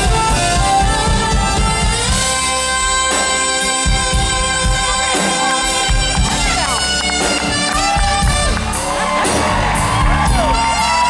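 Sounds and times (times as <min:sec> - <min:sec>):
saxophones playing duet: 0:00.0 - 0:08.9, 0:10.4 - 0:11.0
bass: 0:00.0 - 0:11.0
drums: 0:00.0 - 0:11.0.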